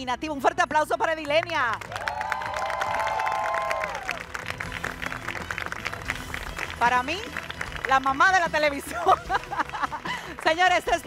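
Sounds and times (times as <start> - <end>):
group clapping: 1.2 - 11.0
voices cheering: 1.9 - 4.2.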